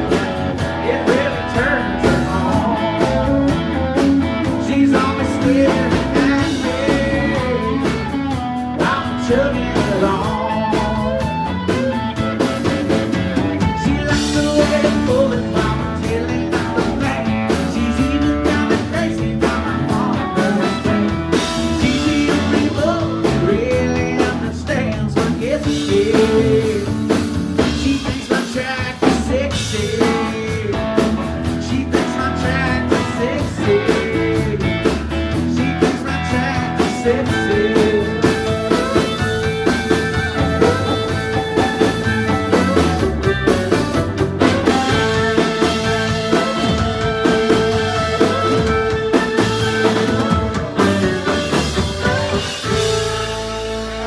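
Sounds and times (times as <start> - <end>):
country band playing: 0.0 - 54.0
sliding melody line: 35.6 - 54.0.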